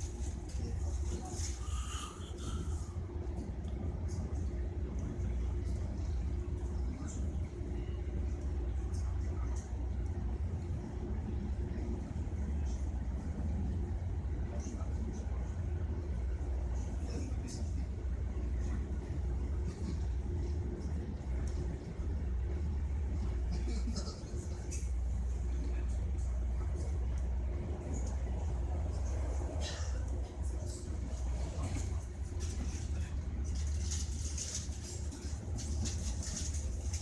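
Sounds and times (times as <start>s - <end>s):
faint steady hum: 0.0s - 37.0s
train rumble: 0.0s - 37.0s
light clicks and rattles: 31.6s - 37.0s.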